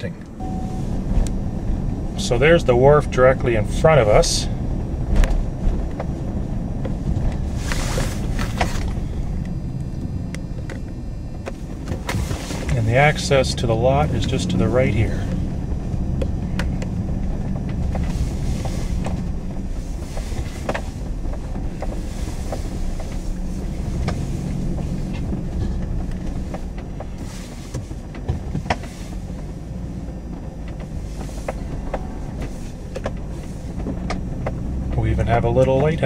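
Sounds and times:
truck engine low hum: 0.0 - 36.0.

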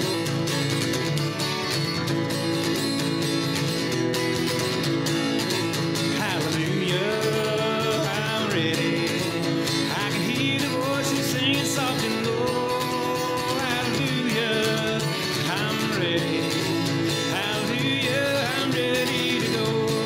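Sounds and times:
acoustic guitar strumming: 0.0 - 20.0
man singing: 6.1 - 20.0.

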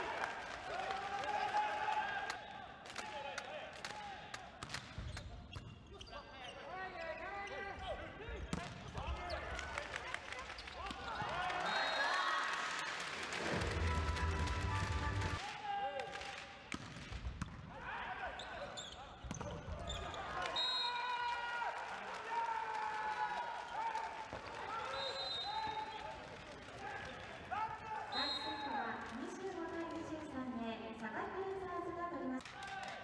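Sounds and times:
crowd cheering: 0.0 - 4.5, 9.3 - 16.2, 20.1 - 29.6
volleyball smacks and bounces: 16.7 - 17.7.

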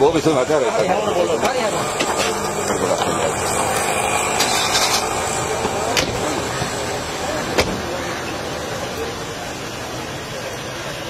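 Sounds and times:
outdoor background noise: 0.0 - 11.0
car door slamming: 7.5 - 7.9.

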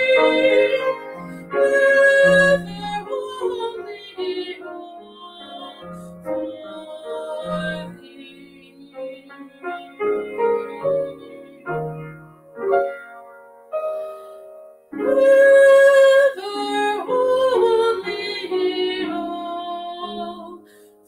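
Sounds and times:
woman singing a hymn: 0.0 - 12.1, 15.0 - 20.8
grand piano accompaniment: 0.0 - 21.0.

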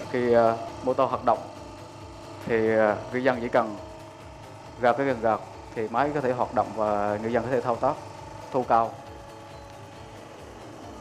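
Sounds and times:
hydraulic machine humming: 0.0 - 11.0.

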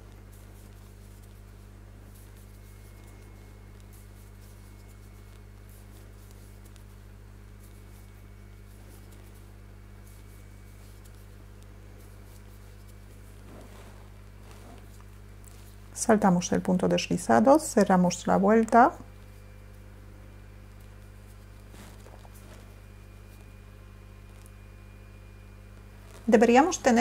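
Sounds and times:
crochet hook rustling yarn: 0.0 - 15.8, 20.7 - 23.6
steady low hum: 0.0 - 27.0.

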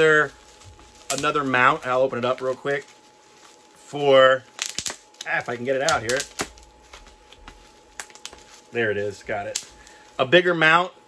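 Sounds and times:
plastic bag crinkling: 0.0 - 10.5.

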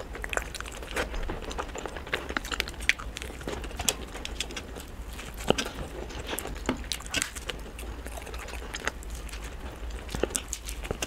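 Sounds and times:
crunchy pastry chewing: 0.0 - 11.0.

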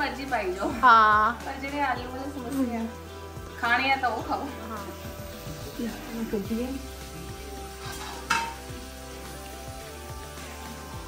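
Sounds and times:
food sizzling in hot oil: 0.0 - 11.0
tongs clinking against pan: 7.8 - 8.7.

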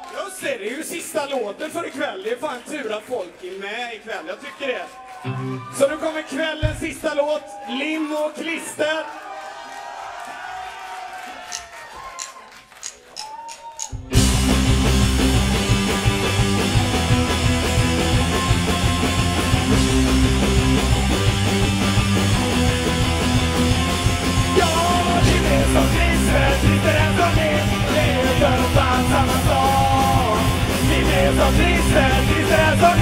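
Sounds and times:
live punk rock band: 14.1 - 33.0.

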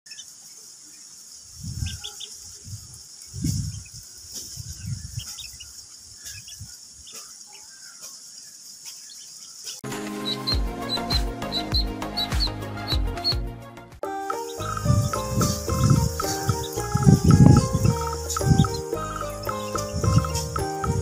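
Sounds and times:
ducklings peeping: 0.1 - 8.2, 8.8 - 13.4, 14.4 - 21.0
music jingle with deep beat: 9.8 - 21.0.

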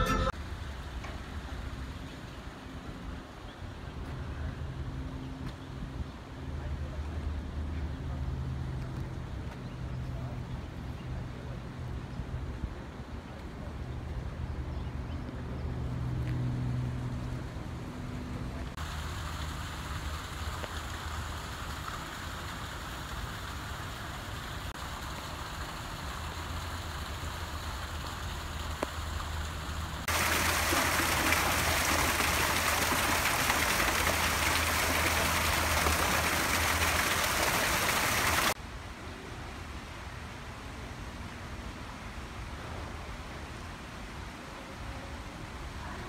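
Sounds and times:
fountain water splashing: 18.5 - 38.6.

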